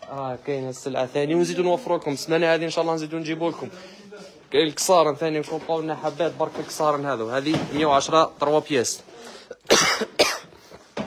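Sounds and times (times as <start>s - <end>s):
person coughing: 9.5s - 10.8s.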